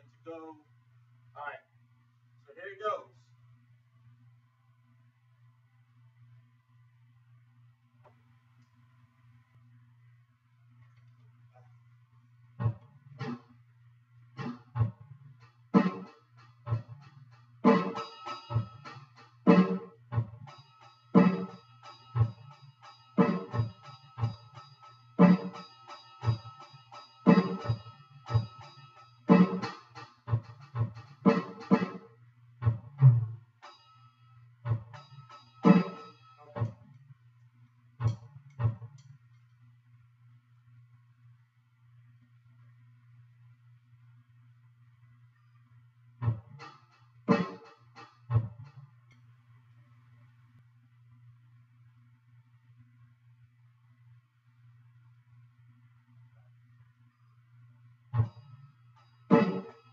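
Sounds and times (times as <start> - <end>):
low electrical hum: 0.0 - 59.9
electronic drum hits: 12.6 - 13.5, 15.8 - 33.9, 34.6 - 36.8, 46.2 - 48.7, 59.3 - 59.9
ringing cymbal: 20.5 - 29.7, 33.6 - 36.7, 58.2 - 59.9.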